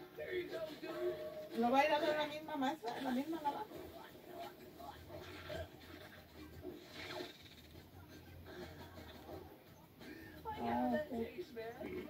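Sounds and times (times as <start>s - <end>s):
faint television sound: 0.0s - 12.0s.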